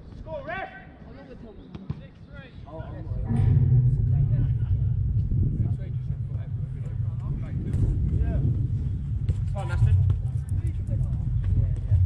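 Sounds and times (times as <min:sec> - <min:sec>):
steady low rumble: 0:02.8 - 0:12.0.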